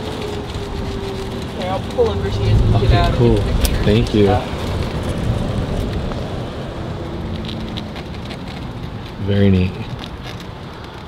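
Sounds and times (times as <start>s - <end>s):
tyre and wind noise: 0.0s - 11.0s.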